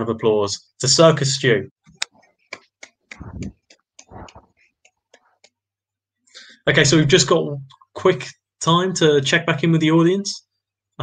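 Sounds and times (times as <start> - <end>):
hand claps: 2.0 - 5.6.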